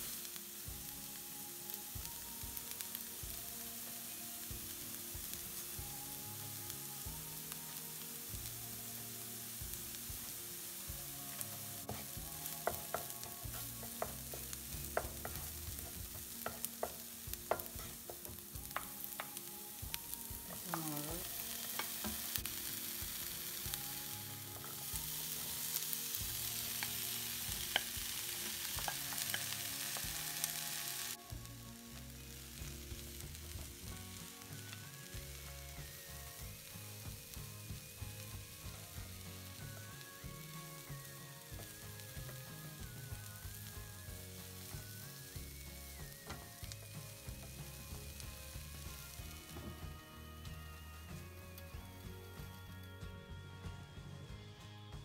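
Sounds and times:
food sizzling in oil: 0.0s - 52.6s
spatula stirring in wok: 9.6s - 31.4s.

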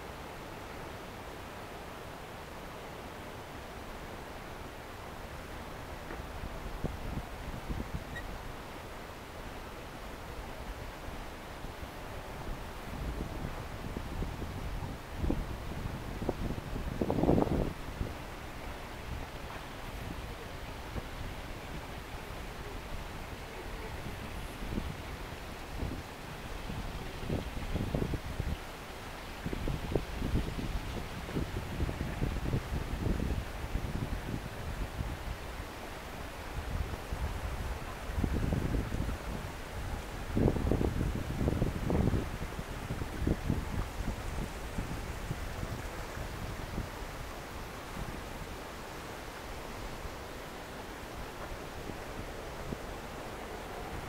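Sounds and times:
faint steady hiss: 0.0s - 54.0s
wind rumbling on microphone: 3.6s - 54.0s.

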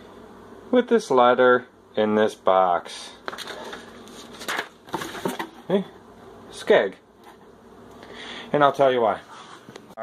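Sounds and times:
paper rustling: 3.2s - 5.6s.

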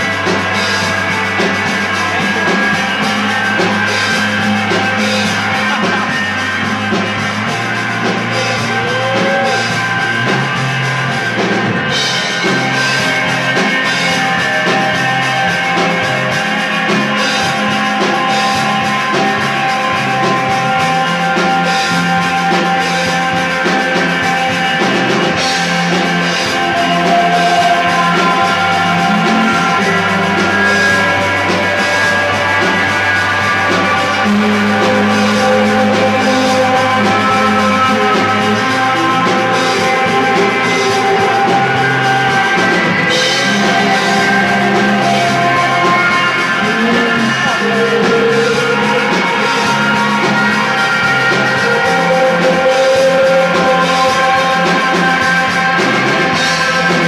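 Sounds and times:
bass tones: 0.0s - 57.0s
drum kit beat: 0.0s - 57.0s
electric guitar tones: 0.0s - 57.0s.

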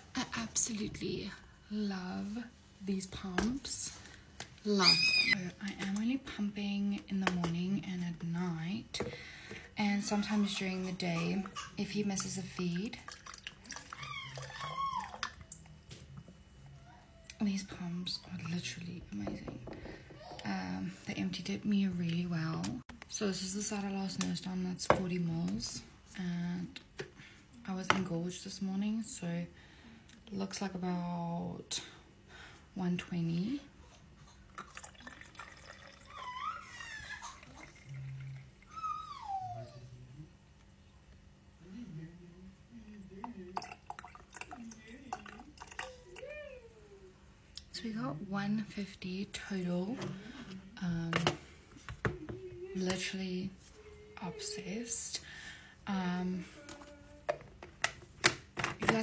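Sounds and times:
baby squealing: 4.8s - 5.4s, 36.0s - 37.6s, 38.7s - 39.8s
milk trickling into bottle: 34.5s - 39.0s, 43.6s - 46.3s.

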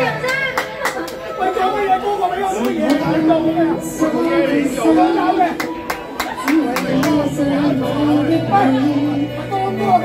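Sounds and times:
karaoke backing music: 0.0s - 10.0s
voices talking over one another: 1.4s - 10.0s.

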